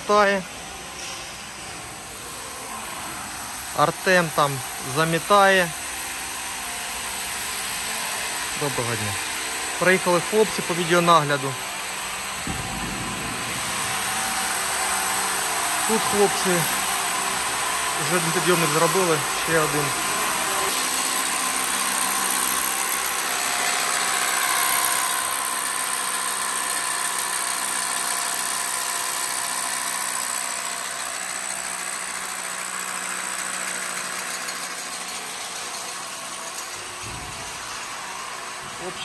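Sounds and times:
hammer drill boring into concrete: 6.9s - 37.0s.

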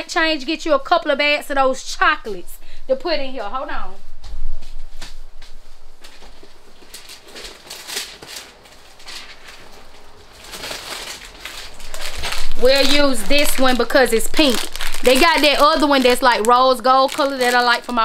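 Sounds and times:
plastic packaging rustling: 6.0s - 18.0s.

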